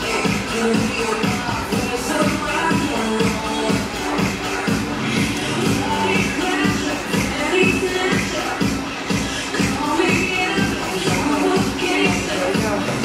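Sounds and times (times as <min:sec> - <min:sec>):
upbeat dance music: 0:00.0 - 0:13.0.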